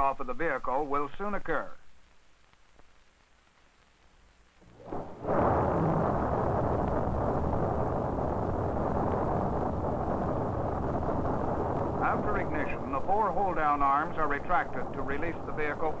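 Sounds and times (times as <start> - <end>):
rocket engine roar: 4.6 - 16.0.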